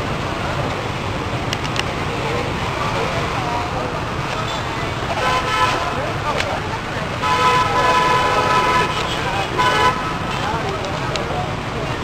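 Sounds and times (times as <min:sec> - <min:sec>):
passing traffic: 0:00.0 - 0:12.0
vehicle horns honking: 0:04.4 - 0:06.2, 0:07.2 - 0:10.4.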